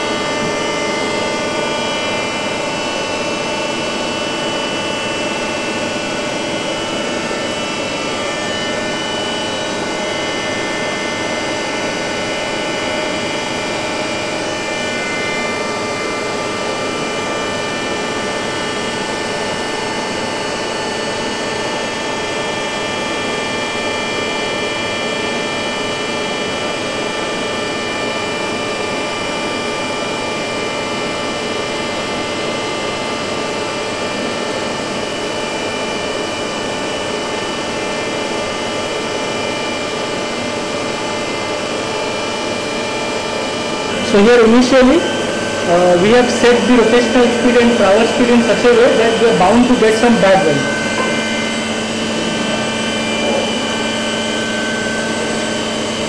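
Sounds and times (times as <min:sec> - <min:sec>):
milling machine whine: 0:00.0 - 0:29.5, 0:34.4 - 0:56.0.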